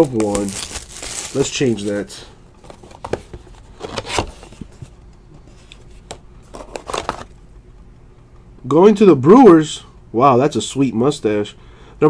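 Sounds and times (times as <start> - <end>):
trading cards rustling and sliding: 0.0 - 7.3.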